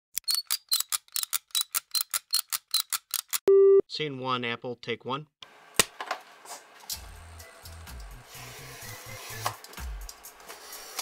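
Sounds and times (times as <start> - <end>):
short loud beep: 3.5 - 3.8.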